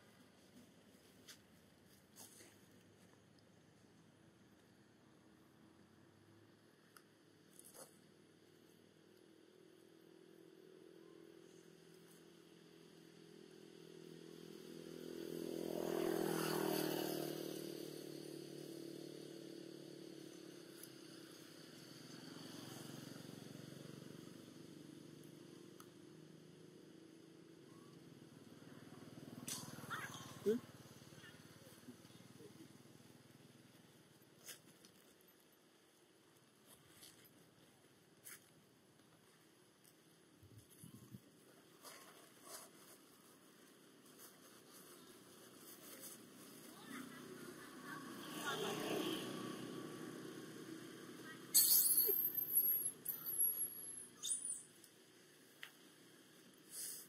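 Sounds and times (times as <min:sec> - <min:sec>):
motorcycle passing: 0:13.3 - 0:27.4, 0:28.2 - 0:33.9, 0:45.6 - 0:54.1.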